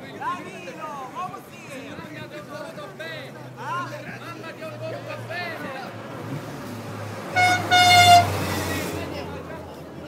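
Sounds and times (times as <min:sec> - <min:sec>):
car engine hum: 0:05.1 - 0:09.4
car horn toots: 0:07.4 - 0:08.4.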